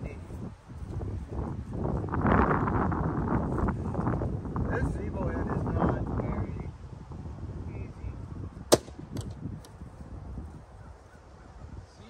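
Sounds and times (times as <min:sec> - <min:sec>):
wind rumbling on microphone: 0:00.0 - 0:12.0
plastic struck hard cracking: 0:08.7 - 0:09.4.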